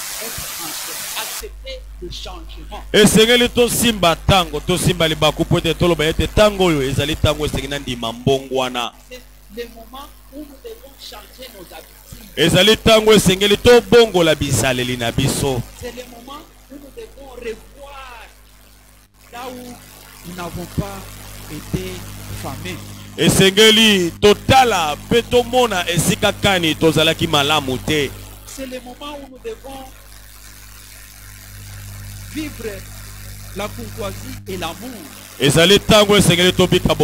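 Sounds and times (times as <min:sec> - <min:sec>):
faint microphone hiss: 0:00.0 - 0:37.0
man preaching over pa: 0:01.4 - 0:18.3, 0:19.4 - 0:29.9, 0:33.6 - 0:37.0
low electrical hum: 0:01.4 - 0:37.0.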